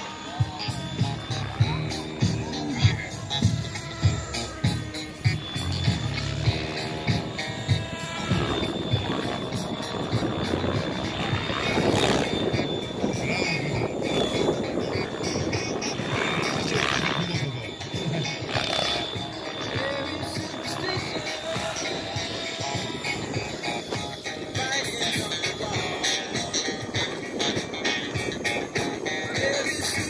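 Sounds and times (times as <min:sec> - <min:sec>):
model helicopter whine: 0:00.0 - 0:30.0
music: 0:00.0 - 0:30.0.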